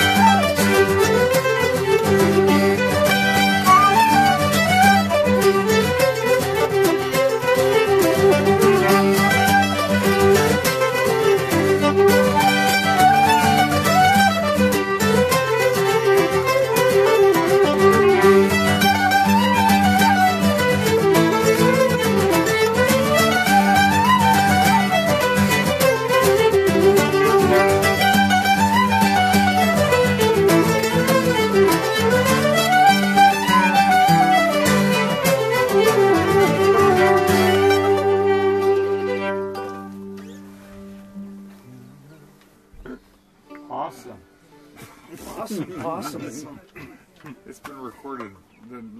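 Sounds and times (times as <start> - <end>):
fiddles playing a folk tune: 0.0 - 42.6, 43.4 - 46.9
strummed acoustic guitars: 0.0 - 48.3
mandolin: 0.0 - 48.9.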